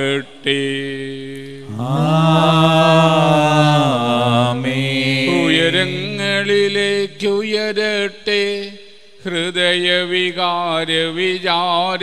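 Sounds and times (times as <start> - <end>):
man chanting a sung prayer: 0.0 - 12.0.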